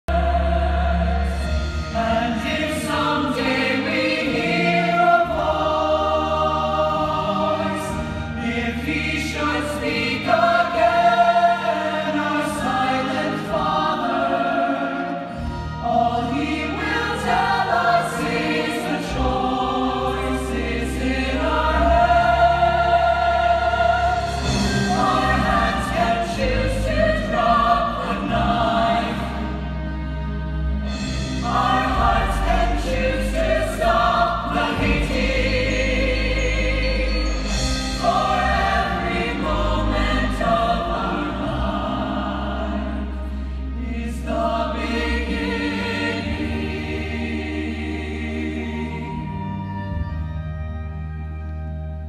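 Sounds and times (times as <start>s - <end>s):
chorus singing in harmony: 0.1s - 50.9s
instrumental accompaniment: 0.1s - 52.0s.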